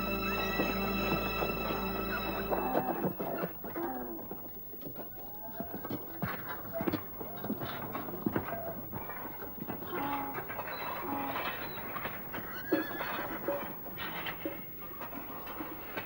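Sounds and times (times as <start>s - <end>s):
busy camp background: 0.0s - 16.0s
horse hooves clopping: 0.0s - 16.0s.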